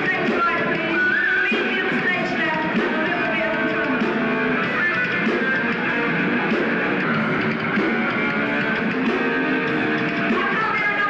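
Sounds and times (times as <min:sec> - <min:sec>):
electric guitars: 0:00.0 - 0:11.0
live rock band playing: 0:00.0 - 0:11.0.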